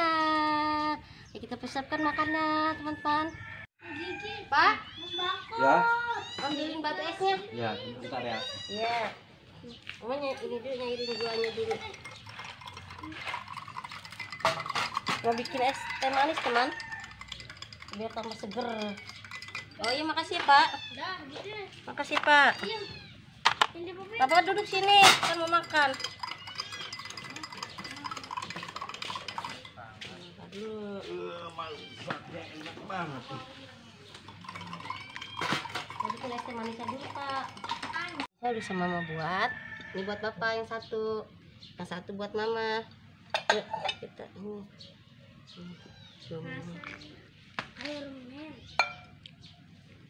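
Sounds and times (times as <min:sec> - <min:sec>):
tableware clinking: 0:10.8 - 0:20.8, 0:23.6 - 0:29.8, 0:34.0 - 0:38.3, 0:43.3 - 0:44.1, 0:48.8 - 0:49.1
tea pouring into a glass: 0:11.2 - 0:19.8, 0:25.4 - 0:29.7, 0:34.3 - 0:38.2.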